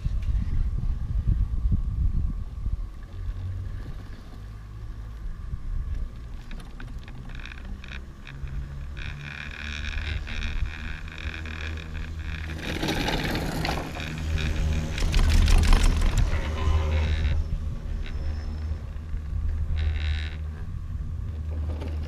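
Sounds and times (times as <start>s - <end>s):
wind rumble on microphone: 0.0s - 22.0s
lift rope whine with clicking: 2.9s - 22.0s.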